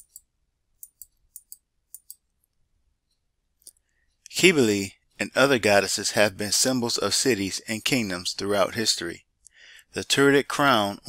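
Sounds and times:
computer mouse clicks: 0.0 - 0.2, 0.8 - 2.2.

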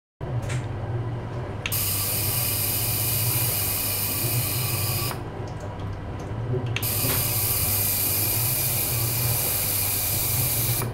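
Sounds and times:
low steady hum: 0.2 - 10.9.

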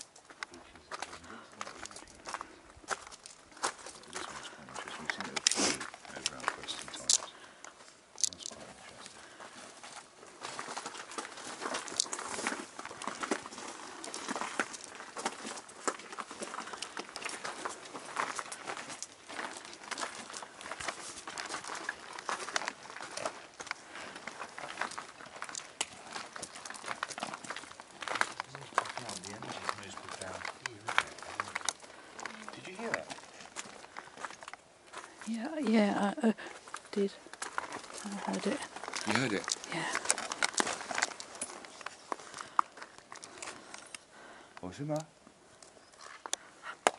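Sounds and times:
camera handling rustling and clicks: 5.2 - 8.6, 36.7 - 44.1, 45.6 - 46.9.

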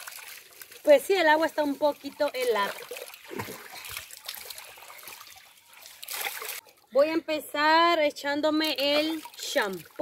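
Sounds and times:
water pouring from a bowl: 0.0 - 6.7
water trickling and splashing: 0.0 - 7.5, 8.2 - 10.0.

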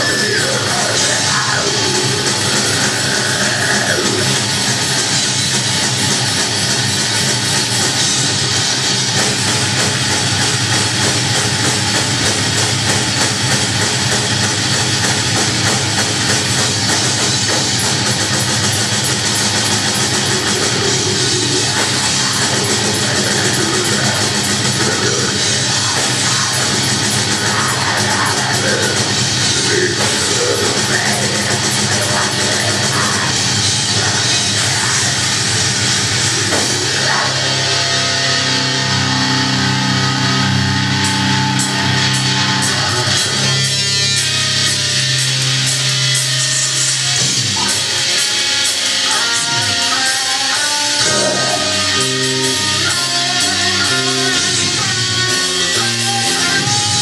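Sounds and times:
bass guitar: 0.0 - 57.0
drum kit: 0.0 - 57.0
electric guitars: 0.0 - 57.0.

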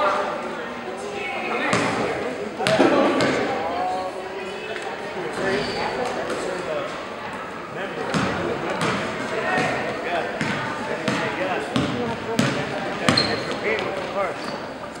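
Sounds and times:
people chattering: 0.0 - 15.0
basketball bouncing on gym floor: 8.1 - 9.0, 10.4 - 14.1.

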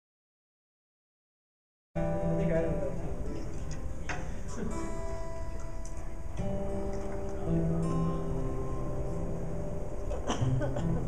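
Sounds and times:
acoustic guitars playing: 2.0 - 11.0.

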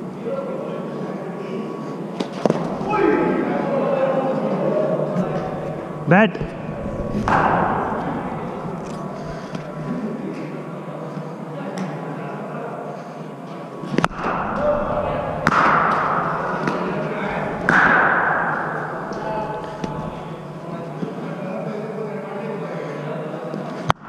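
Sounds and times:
murmur of voices: 0.0 - 24.0
cricket ball impacts: 15.4 - 20.4.

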